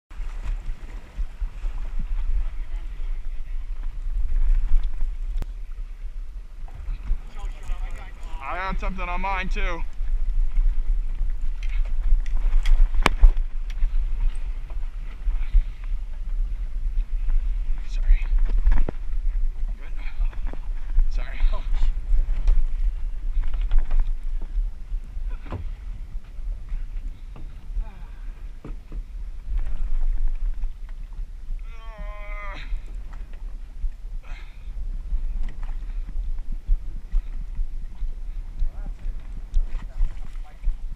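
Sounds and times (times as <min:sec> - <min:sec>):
boat engine rumble: 0:00.1 - 0:40.9
water noise: 0:00.1 - 0:40.9
wind buffeting microphone: 0:00.1 - 0:40.9.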